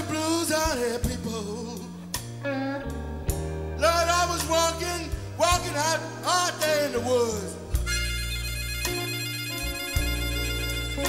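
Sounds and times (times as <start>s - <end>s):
slow electric blues band: 0.0s - 11.0s
sustained high lead guitar notes: 2.3s - 11.0s.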